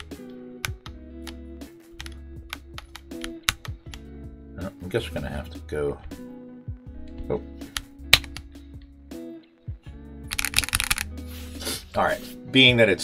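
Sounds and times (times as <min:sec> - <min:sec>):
soft background music: 0:00.0 - 0:13.0
keyboard clicks and knocks: 0:02.0 - 0:04.1, 0:10.3 - 0:11.0
hands sliding rustle: 0:11.1 - 0:12.4.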